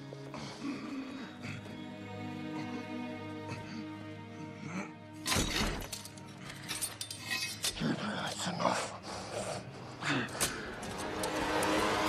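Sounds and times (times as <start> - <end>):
sustained music score: 0.0 - 12.0.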